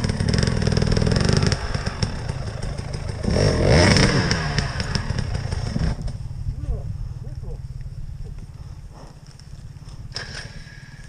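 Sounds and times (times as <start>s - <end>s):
dirt bike engines revving: 0.0s - 11.0s.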